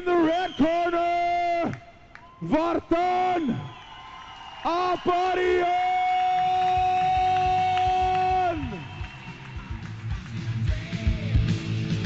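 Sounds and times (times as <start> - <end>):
announcer shouting: 2.4 - 3.7, 4.6 - 8.9
rock music with drum beat: 7.1 - 12.0.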